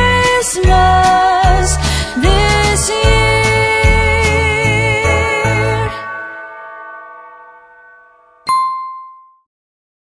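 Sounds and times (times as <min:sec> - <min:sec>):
held chord of a christmas song: 0:00.0 - 0:09.1
bright bell ding: 0:05.9 - 0:09.5.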